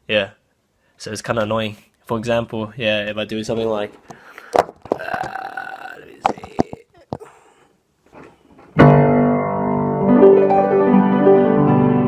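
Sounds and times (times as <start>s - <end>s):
acoustic piano playing: 8.8s - 12.0s.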